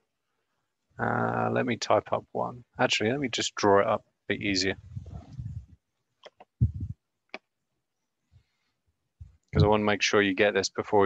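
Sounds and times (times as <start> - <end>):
computer mouse clicks: 6.2 - 6.6.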